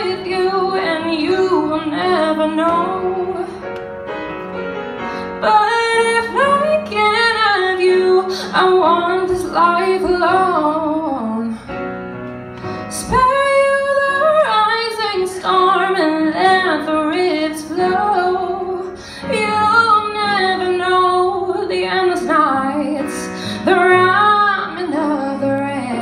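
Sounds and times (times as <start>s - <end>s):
woman singing into microphone: 0.0s - 3.6s, 5.4s - 11.6s, 12.9s - 26.0s.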